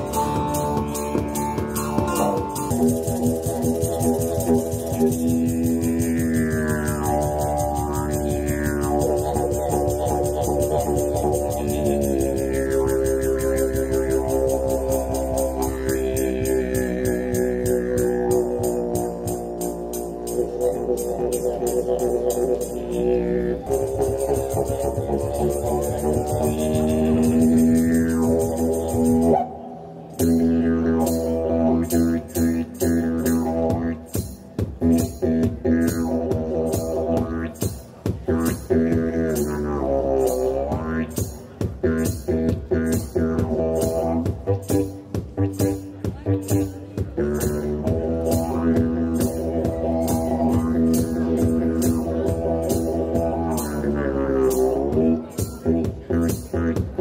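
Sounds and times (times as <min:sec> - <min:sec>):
didgeridoo drone: 0:00.0 - 0:57.0.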